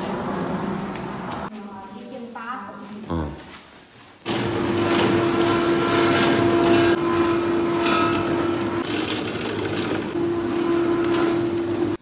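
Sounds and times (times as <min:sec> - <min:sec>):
carding machine hum: 0:04.2 - 0:12.0
whirr of spinning rollers and belts: 0:04.3 - 0:12.0.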